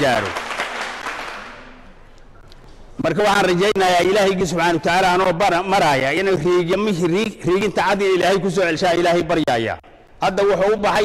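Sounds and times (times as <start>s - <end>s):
background noise haze: 0.0s - 11.0s.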